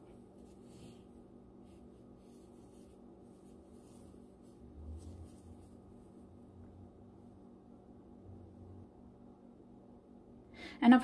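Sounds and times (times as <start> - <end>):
hands rustling yarn: 0.0 - 7.4
steady low hum: 0.0 - 11.0.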